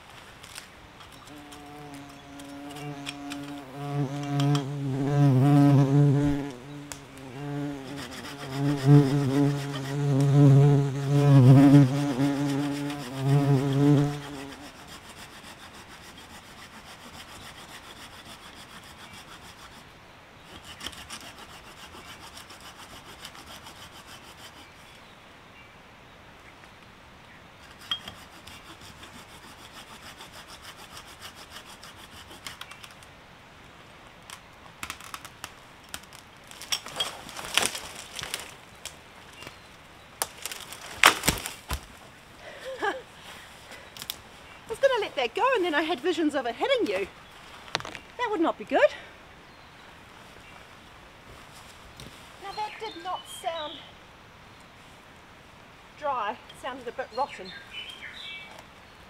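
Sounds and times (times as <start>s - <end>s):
hand saw scraping branch: 0.5s - 4.8s, 7.1s - 10.6s, 11.3s - 19.9s, 20.5s - 24.9s, 27.6s - 32.9s
bumblebee buzzing: 1.3s - 14.9s
wood cracking: 34.3s - 39.5s, 40.2s - 42.0s.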